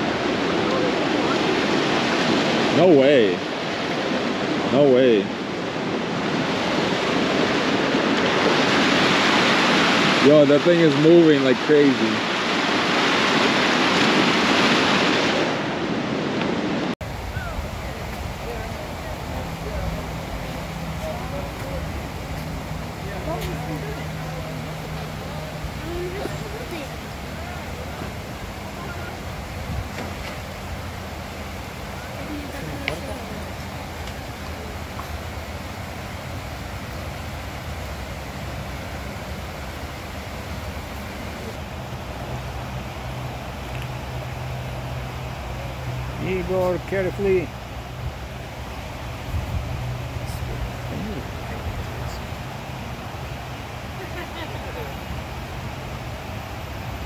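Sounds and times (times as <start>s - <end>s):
floodwater rushing: 0.0s - 57.0s
truck engine humming: 17.0s - 57.0s
faint voices murmuring: 17.2s - 30.0s, 50.0s - 55.3s.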